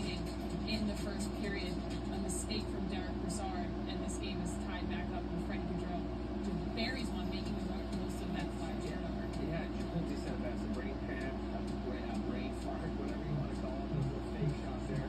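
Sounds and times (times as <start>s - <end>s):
faint sports broadcast voices: 0.0s - 15.0s
steady low hum: 0.0s - 15.0s.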